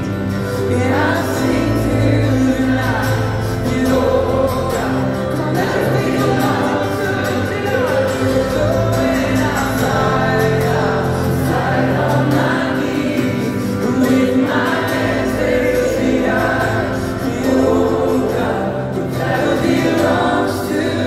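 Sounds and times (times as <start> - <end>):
crowd singing along: 0.0 - 21.0
lead singer singing: 0.0 - 21.0
live band playing: 0.0 - 21.0.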